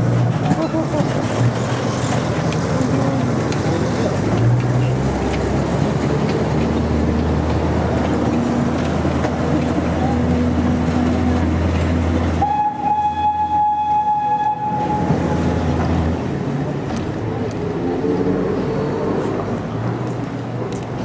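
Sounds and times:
locomotive engine rumble: 0.0s - 21.0s
train wheels on rails: 0.0s - 21.0s
train whistle: 12.4s - 15.4s.

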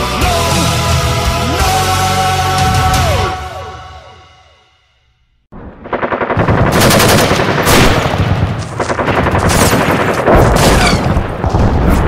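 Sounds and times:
gunshots: 5.6s - 12.0s
machine-gun fire: 5.6s - 12.0s.

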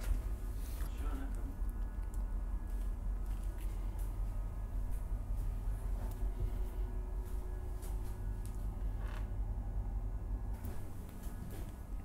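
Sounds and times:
steady low hum: 0.0s - 12.0s
short creak: 8.9s - 9.4s.

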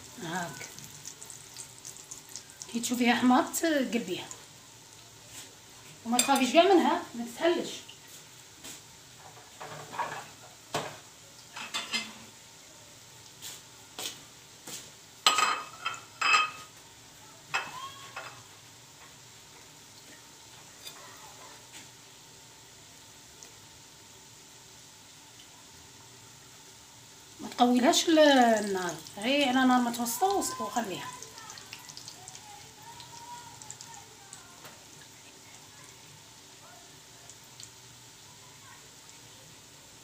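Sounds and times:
food sizzling in oil: 0.0s - 40.0s.

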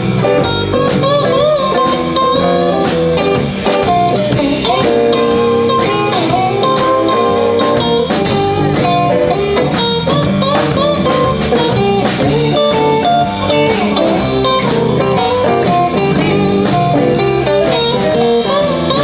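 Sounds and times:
lead guitar bent notes: 0.0s - 19.0s
live blues band playing: 0.0s - 19.0s.

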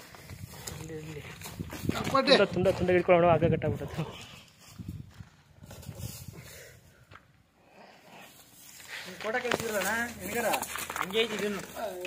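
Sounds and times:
hooves on dry dirt and straw: 0.0s - 3.1s, 4.2s - 7.0s, 8.2s - 12.0s.

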